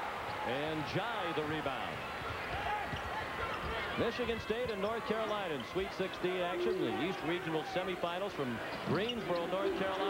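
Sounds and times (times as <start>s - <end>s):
arena background noise: 0.0s - 10.0s.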